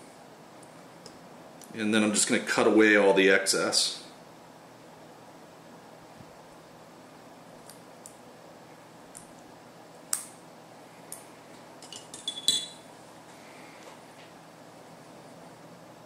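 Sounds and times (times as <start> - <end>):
metal clinks: 11.8 - 12.8.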